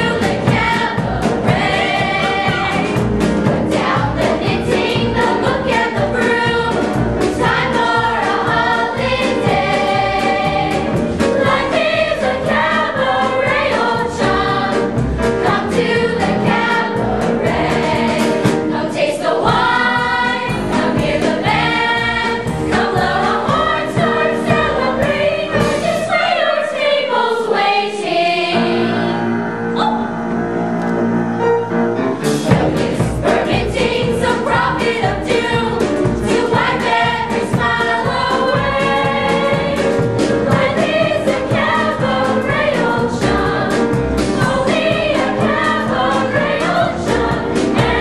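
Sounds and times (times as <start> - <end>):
instrumental accompaniment with beat: 0.0 - 27.8, 28.4 - 48.0
chorus singing musical theatre song: 0.0 - 48.0.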